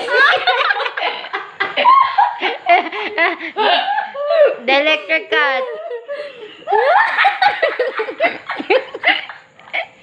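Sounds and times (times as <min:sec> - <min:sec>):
people laughing: 0:00.0 - 0:04.6, 0:05.4 - 0:09.9.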